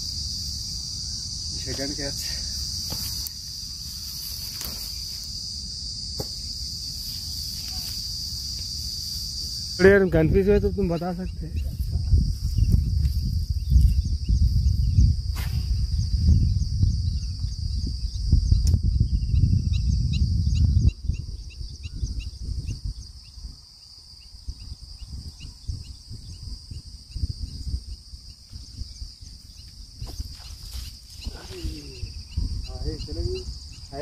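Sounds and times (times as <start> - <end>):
insect drone: 0.0 - 34.0
short insect chirps: 0.0 - 34.0
low rumble on microphone: 10.0 - 23.6.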